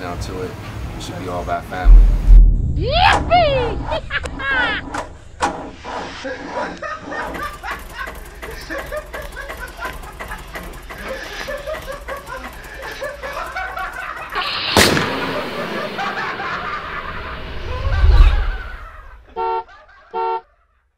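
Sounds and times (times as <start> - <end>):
deep low boom: 1.8 - 5.4, 14.6 - 19.2
sharp hit: 1.8 - 5.8, 14.4 - 19.2
car horn toot: 19.3 - 20.5.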